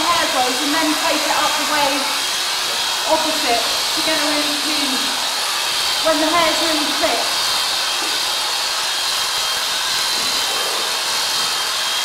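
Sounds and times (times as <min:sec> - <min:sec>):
electric clippers whining: 0:00.0 - 0:12.0.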